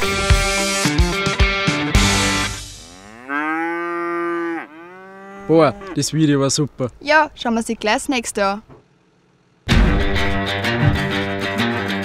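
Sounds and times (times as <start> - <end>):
cow mooing: 2.6 - 6.2.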